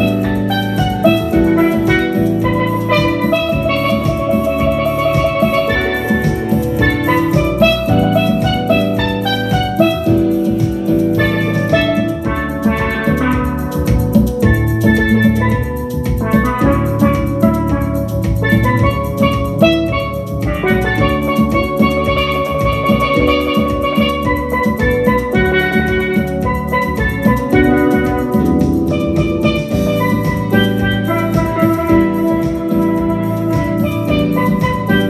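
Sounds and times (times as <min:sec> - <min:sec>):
backing track with bass and drums: 0:00.0 - 0:35.0
steelpan melody: 0:00.0 - 0:35.0.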